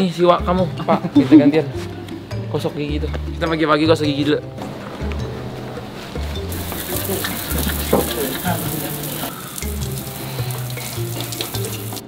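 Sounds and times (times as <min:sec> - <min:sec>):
water running from tap: 0:06.5 - 0:12.0.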